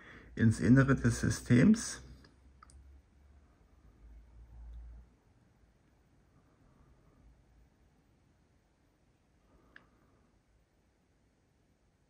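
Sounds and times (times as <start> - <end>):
faint low rumble: 0.0 - 12.0.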